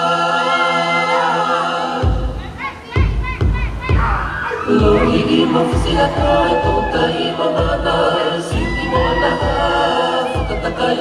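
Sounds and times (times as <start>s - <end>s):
group singing a chord: 0.0s - 2.5s, 4.6s - 11.0s
heavy drum beats: 2.0s - 11.0s.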